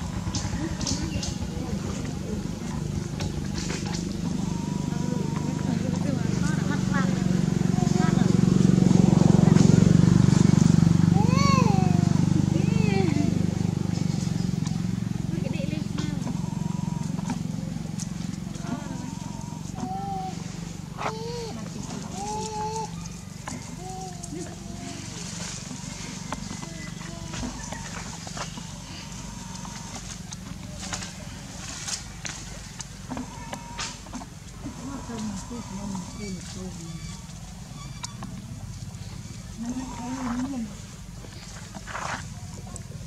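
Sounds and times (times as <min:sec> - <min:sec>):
short wavering calls: 0:00.0 - 0:08.3, 0:11.0 - 0:41.4
motor engine drone: 0:00.0 - 0:43.0
monkey crying: 0:04.2 - 0:08.0, 0:18.6 - 0:25.4.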